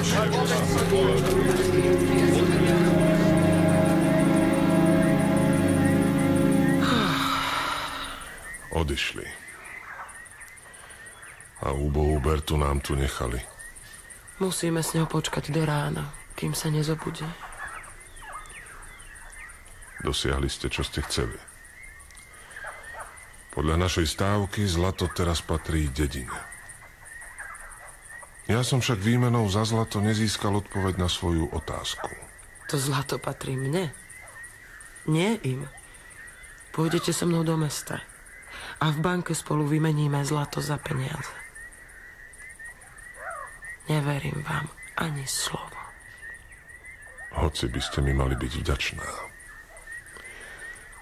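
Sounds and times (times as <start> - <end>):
rising and falling animal call: 0.0 - 8.6
bird chirps: 0.0 - 51.0
insect pulsing: 0.0 - 51.0.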